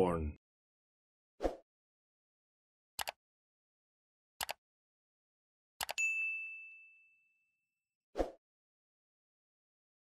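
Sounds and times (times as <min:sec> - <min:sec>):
bright bell ding: 0:06.0 - 0:07.4.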